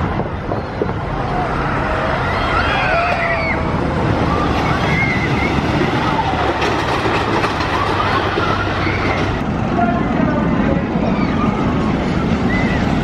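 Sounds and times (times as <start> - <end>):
roller coaster rumble and clatter: 0.0 - 13.0.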